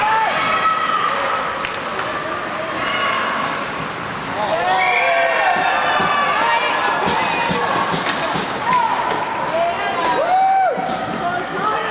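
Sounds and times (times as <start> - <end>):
arena noise: 0.0 - 11.9.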